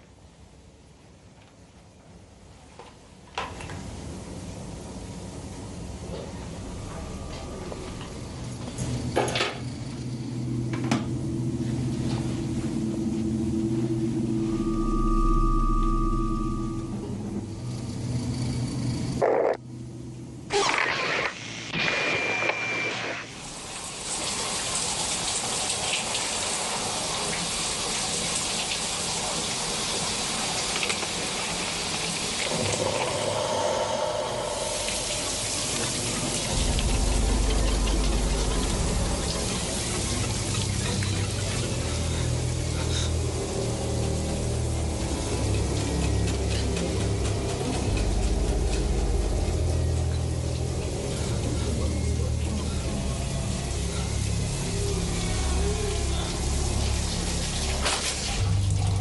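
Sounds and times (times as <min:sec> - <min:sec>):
low droning music score: 0:04.9 - 0:20.5, 0:32.4 - 0:59.0.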